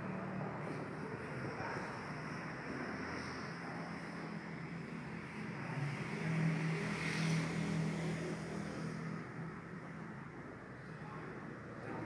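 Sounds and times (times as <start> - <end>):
noisy rush: 0.0 - 12.0.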